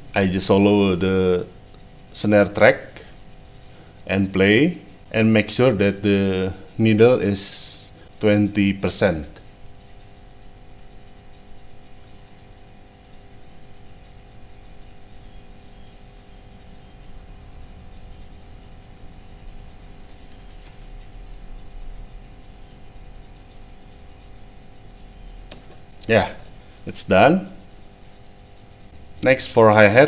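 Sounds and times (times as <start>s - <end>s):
faint electrical hum: 0.0s - 30.0s
faint clicks: 20.1s - 21.0s.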